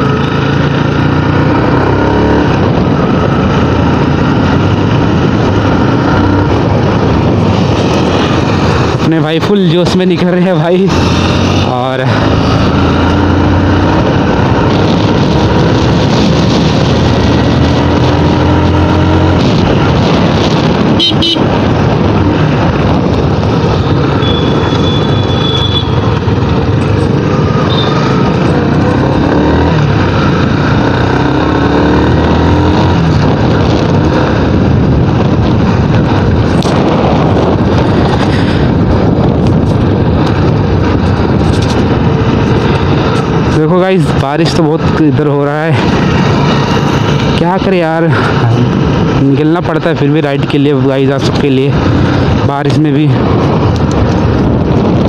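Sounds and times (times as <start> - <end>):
motorcycle engine revving: 0.0 - 55.0
wind and road noise: 0.0 - 55.0.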